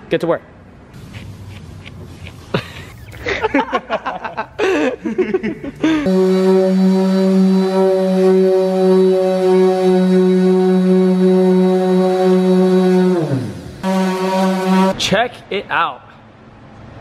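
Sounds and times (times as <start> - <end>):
orbital sander running: 6.1 - 14.9.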